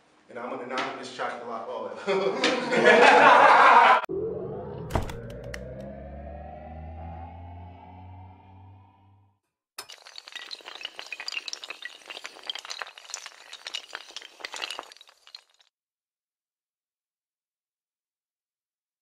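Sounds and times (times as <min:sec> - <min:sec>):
synthesized tone rising: 0:04.1 - 0:09.4
glass shattering and tinkling: 0:09.8 - 0:15.7.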